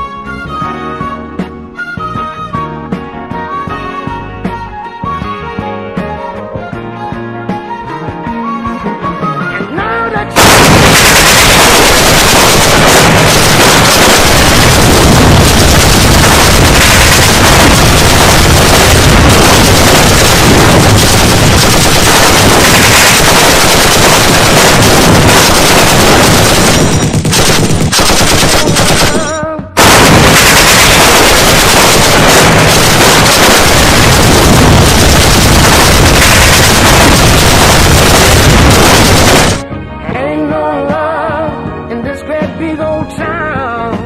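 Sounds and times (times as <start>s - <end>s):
music: 0.0s - 10.4s, 29.0s - 29.8s, 39.6s - 44.0s
rapid gunfire: 10.4s - 39.6s.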